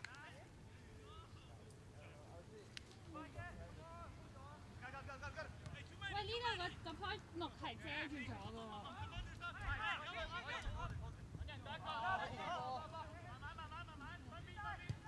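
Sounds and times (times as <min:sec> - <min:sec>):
distant players shouting: 0:08.8 - 0:15.0.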